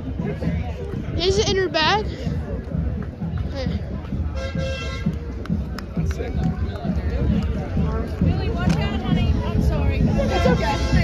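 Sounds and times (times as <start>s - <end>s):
crowd noise: 0.0s - 11.0s
horn toot: 4.3s - 5.2s.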